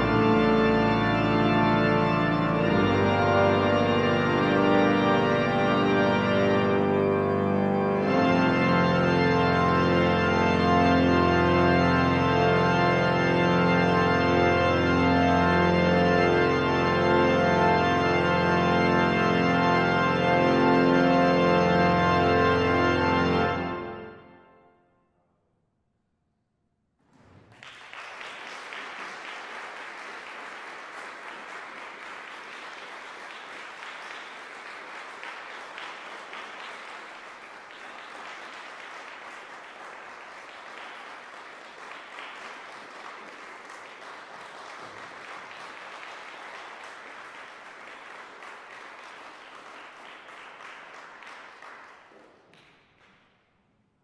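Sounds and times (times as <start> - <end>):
audience applause: 27.1 - 53.2.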